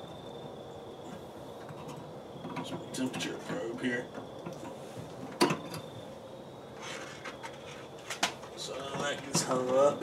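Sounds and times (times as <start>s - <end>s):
probe cable handling noises: 6.8s - 9.9s.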